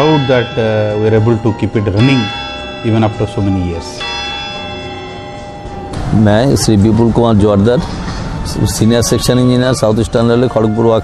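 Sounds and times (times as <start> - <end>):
tower clock bell ringing: 0.0 - 7.6.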